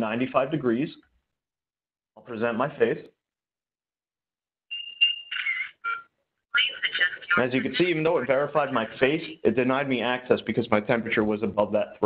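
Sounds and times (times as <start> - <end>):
steady electronic beep: 4.7 - 6.0.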